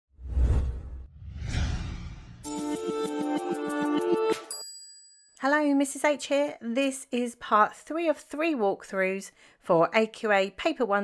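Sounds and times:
whoosh transition effect: 0.2s - 2.6s.

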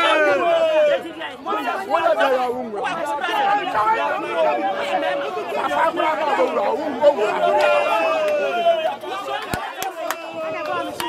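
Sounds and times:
crowd chatter: 0.0s - 11.0s
women arguing loudly: 0.0s - 11.0s.

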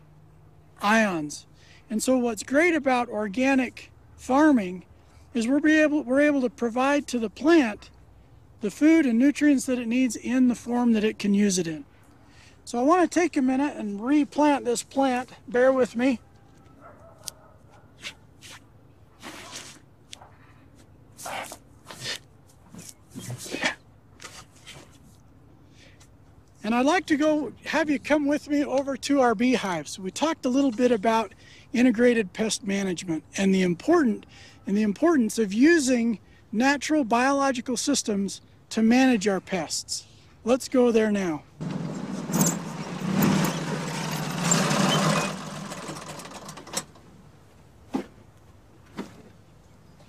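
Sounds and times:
utility vehicle engine running: 41.6s - 47.1s.

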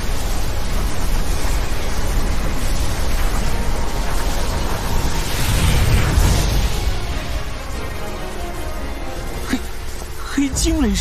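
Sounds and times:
cartoon magical lightning rumble: 0.0s - 11.0s.

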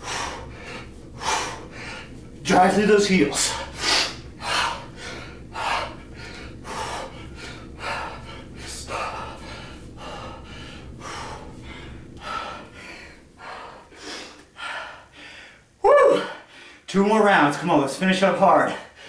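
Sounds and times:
man breathing hard: 0.0s - 2.4s, 3.3s - 16.9s, 18.6s - 19.0s.

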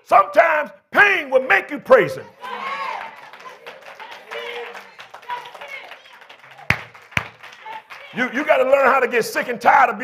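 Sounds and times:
sharp hand clap: 3.0s - 8.2s.

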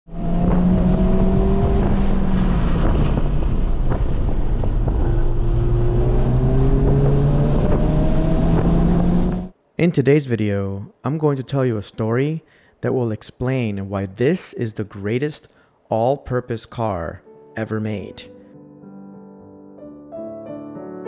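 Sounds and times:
car engine revving: 0.1s - 9.6s.

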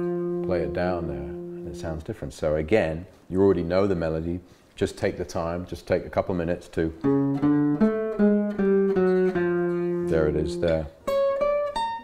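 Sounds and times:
guitar single-note melody: 0.0s - 2.0s, 7.0s - 12.0s.

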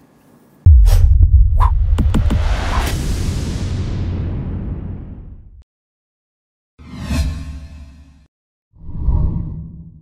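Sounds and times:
deep rumble: 0.7s - 5.6s
whoosh sound effects: 0.7s - 5.6s.

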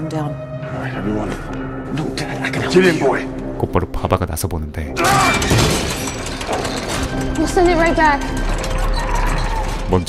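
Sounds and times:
music: 0.0s - 10.0s
dense clatter: 5.3s - 9.8s.

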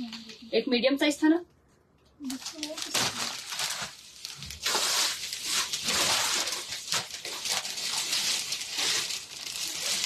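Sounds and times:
plastic and cardboard rustling: 2.2s - 10.0s.

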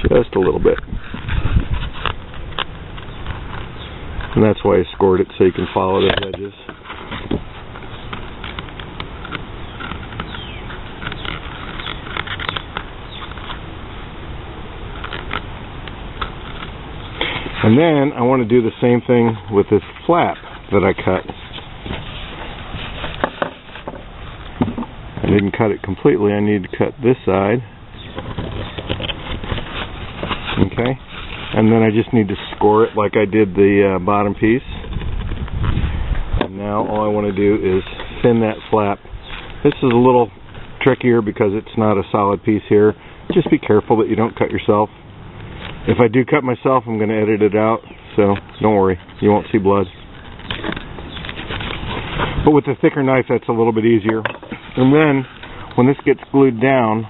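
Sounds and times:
leather rustling: 5.2s - 13.7s, 14.9s - 25.4s, 28.0s - 33.3s, 47.9s - 57.0s.

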